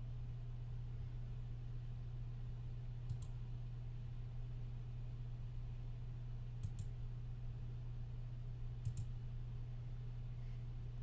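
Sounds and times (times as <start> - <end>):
low electrical hum: 0.0 - 11.0
computer mouse clicking: 3.1 - 3.4, 6.6 - 6.9, 8.8 - 9.1.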